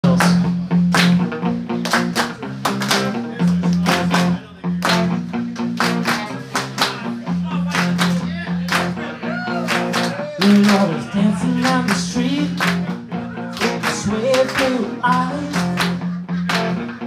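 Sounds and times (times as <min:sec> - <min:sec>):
vocals: 0:00.0 - 0:00.5, 0:07.3 - 0:16.3
guitar: 0:00.0 - 0:17.0
steady drum beat: 0:00.0 - 0:17.0
sustained bass line: 0:00.0 - 0:17.0.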